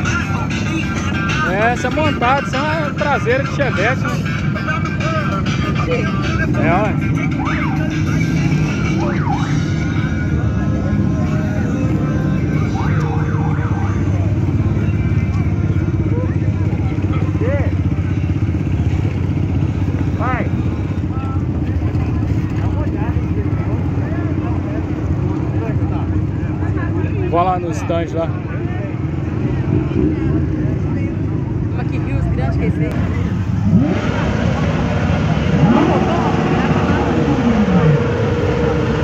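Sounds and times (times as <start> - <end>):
scattered voices: 0.0 - 39.0
traffic engines droning: 0.0 - 39.0.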